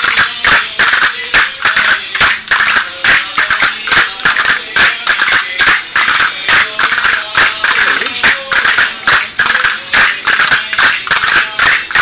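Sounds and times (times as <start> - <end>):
dancers' steps: 0.0 - 12.0
folk dance music: 0.0 - 12.0.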